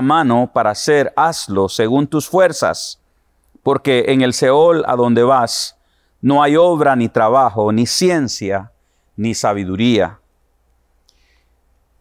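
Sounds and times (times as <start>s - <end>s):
man reading aloud: 0.0s - 3.0s, 3.6s - 10.2s.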